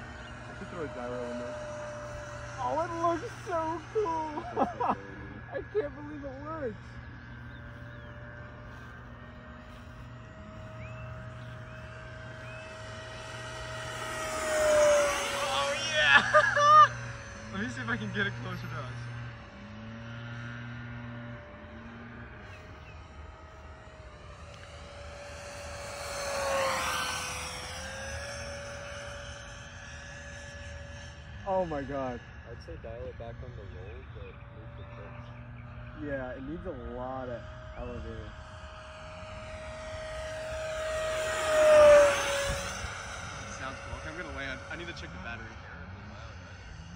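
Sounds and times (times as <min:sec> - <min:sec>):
electric ducted fan whining: 0:00.0 - 0:46.9.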